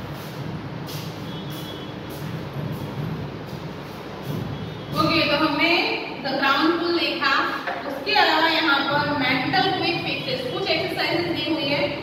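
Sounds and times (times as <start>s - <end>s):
steady low rumble with hiss: 0.0s - 12.0s.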